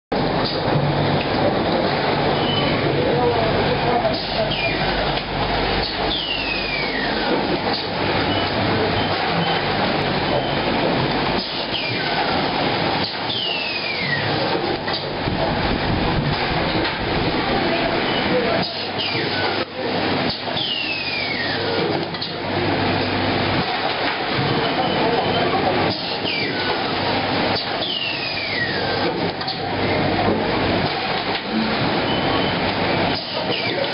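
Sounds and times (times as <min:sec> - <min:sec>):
conveyor machine noise: 0:00.1 - 0:33.9.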